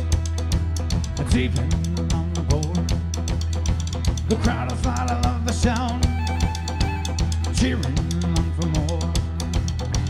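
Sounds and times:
drum kit beat: 0.0s - 10.0s
rock band playing live: 0.0s - 10.0s.

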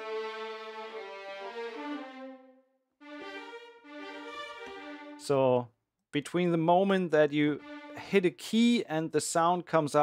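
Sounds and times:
sampled violins playing legato: 0.0s - 5.6s, 6.9s - 8.8s.

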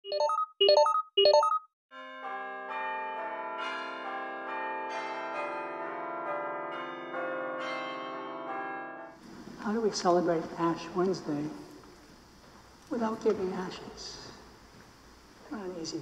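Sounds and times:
church bells ringing: 2.0s - 9.2s.

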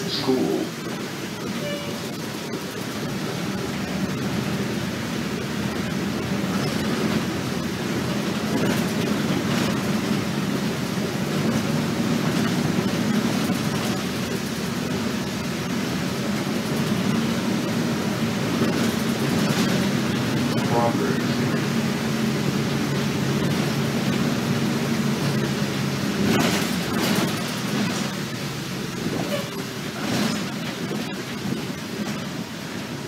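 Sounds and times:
bus engine drone: 0.0s - 33.0s
road and rattle noise: 0.0s - 33.0s.

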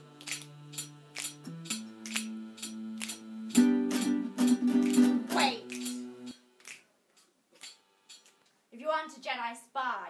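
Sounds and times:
finger snaps: 0.2s - 3.2s, 5.6s - 6.0s.

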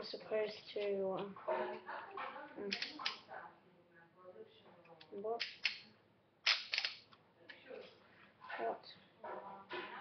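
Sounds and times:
plastic toy clicking: 2.7s - 3.2s, 5.4s - 5.8s, 6.4s - 7.2s.

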